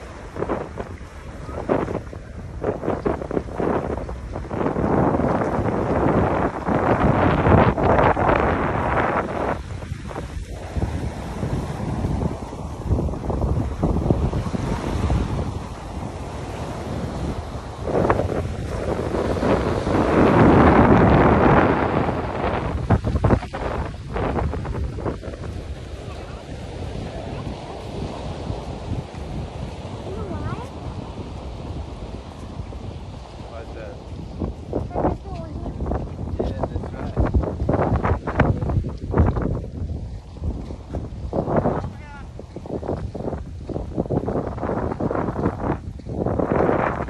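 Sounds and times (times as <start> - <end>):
small waves on sandy shore: 0.0 - 47.0
wind buffeting microphone: 0.0 - 47.0.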